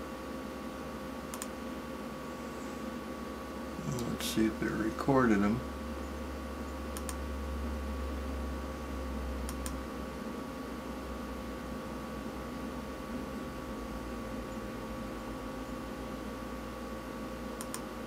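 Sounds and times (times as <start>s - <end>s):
low electrical hum: 0.0s - 18.0s
faint double clicks: 7.0s - 7.2s, 17.6s - 17.8s.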